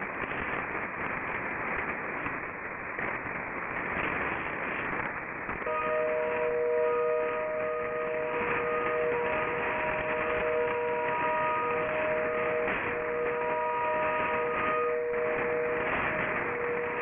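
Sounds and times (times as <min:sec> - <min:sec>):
radio static hiss: 0:00.0 - 0:17.0
steady low radio tones: 0:00.0 - 0:17.0
faint high tones: 0:05.7 - 0:17.0.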